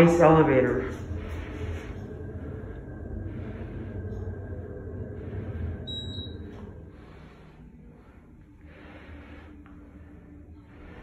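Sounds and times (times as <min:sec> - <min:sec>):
elevator rumble and hum: 0:00.0 - 0:11.0
high-pitched beep: 0:05.9 - 0:06.4.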